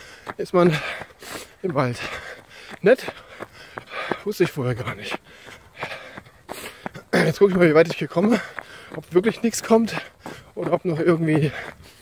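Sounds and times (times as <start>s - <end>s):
person breathing hard: 0.0s - 7.6s, 8.2s - 9.1s, 9.9s - 10.6s, 11.4s - 12.0s.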